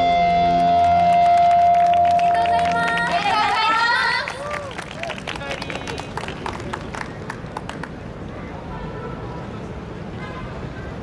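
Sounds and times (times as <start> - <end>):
hand clapping: 0.6 - 8.0.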